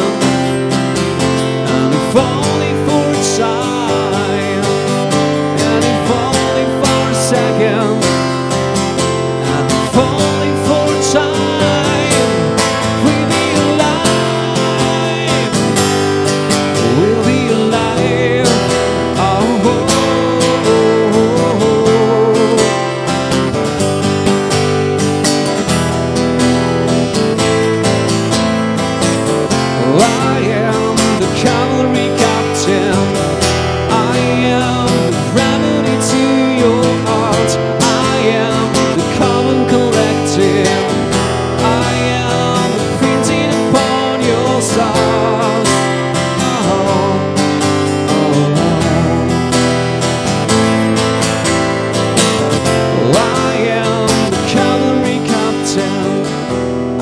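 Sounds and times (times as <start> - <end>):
acoustic guitar strumming: 0.0 - 57.0
person singing wordless melody: 1.3 - 23.4, 29.6 - 50.0, 52.7 - 57.0.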